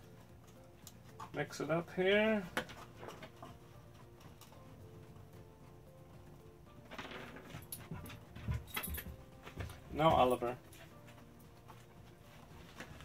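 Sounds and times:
dog moving and making noises: 2.5 - 13.0.

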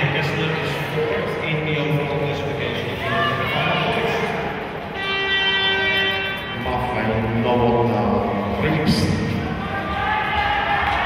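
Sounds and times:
crowd noise in large hall: 0.0 - 11.0
steady horn-like tone: 4.9 - 7.3.

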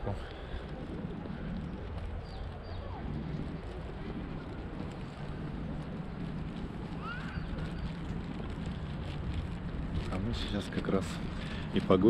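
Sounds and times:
wind on microphone: 0.0 - 11.9.

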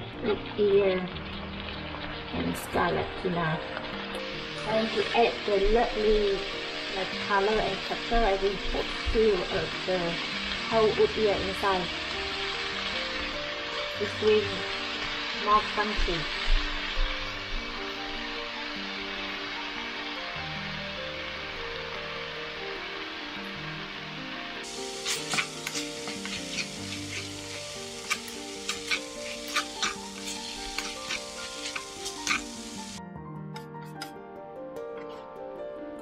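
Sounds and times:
meat sizzling in a frying pan: 0.0 - 33.0
soft background music: 0.0 - 36.0
spatula scraping and clacking on pan: 24.7 - 33.0.

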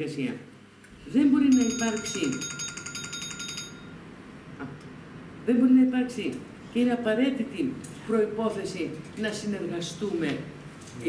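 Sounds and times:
person speaking: 1.0 - 2.5
high trilling electronic ringing: 1.5 - 4.0.

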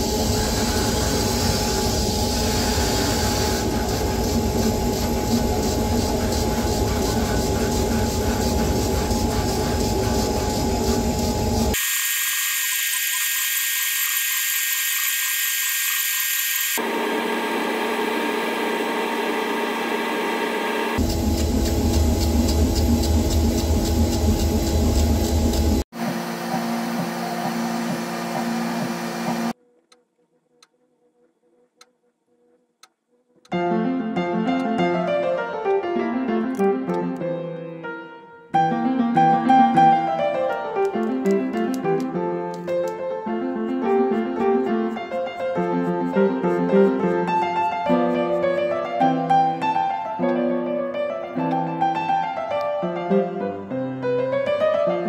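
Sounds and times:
laser cutter running: 2.6 - 29.6.

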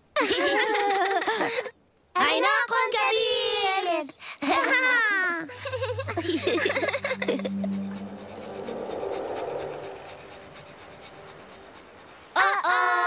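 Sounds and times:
soft soundtrack music: 5.5 - 11.7
loud high held chord: 5.5 - 12.3.

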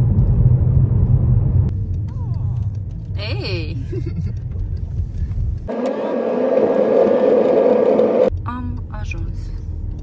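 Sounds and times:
steady whooshing: 5.7 - 8.3.

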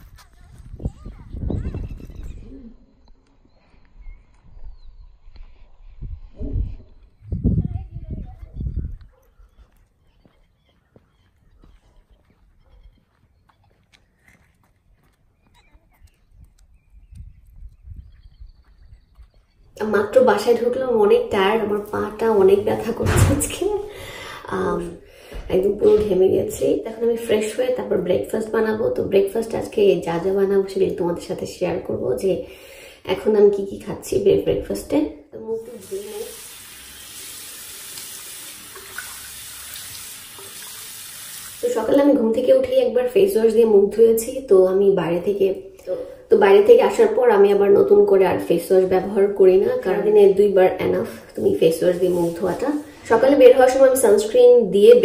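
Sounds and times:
wind rumble on microphone: 0.0 - 3.2, 4.0 - 9.6, 16.0 - 19.8
woman's voice: 19.8 - 36.4, 41.6 - 55.0
tap water running into sink: 35.8 - 42.0.

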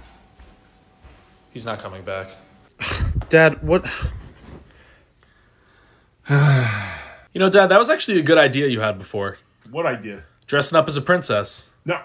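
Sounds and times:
man sighing: 6.2 - 7.2.

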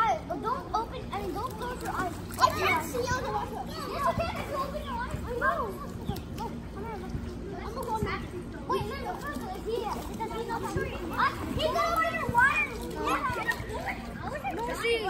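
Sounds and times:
children talking and calling out: 0.0 - 15.0.

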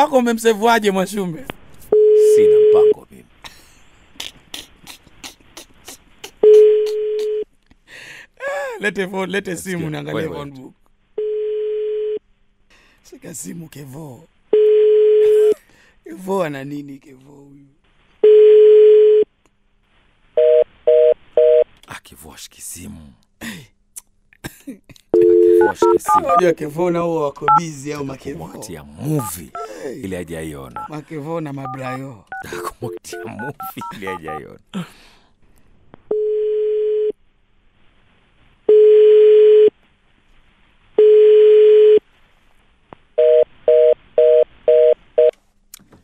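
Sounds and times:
busy signal beeps: 25.2 - 26.5
telephone ringback tone: 25.2 - 26.5.

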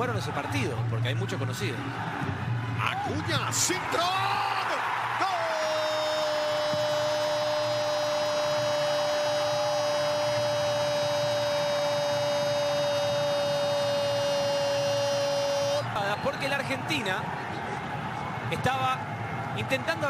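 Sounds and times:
crowd noise: 0.0 - 20.0
commentator shouting long goal cry: 3.0 - 16.2.

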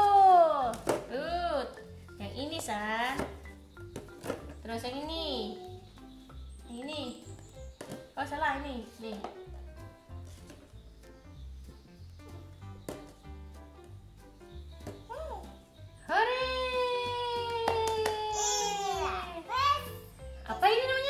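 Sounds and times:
quiet music with low beat: 0.0 - 21.0.

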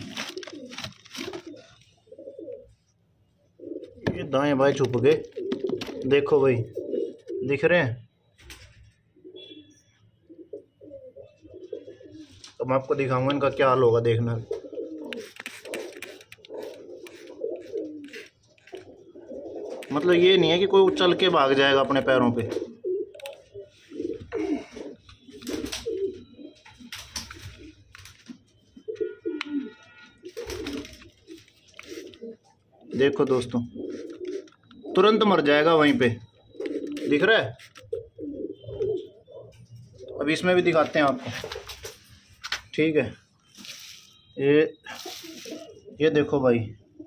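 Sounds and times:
pigeons cooing softly: 0.0 - 42.2, 43.3 - 47.0.

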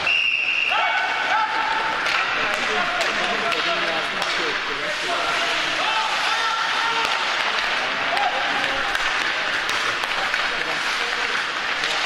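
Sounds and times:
players' voices: 0.0 - 12.0
sticks and puck clacking: 0.7 - 12.0.

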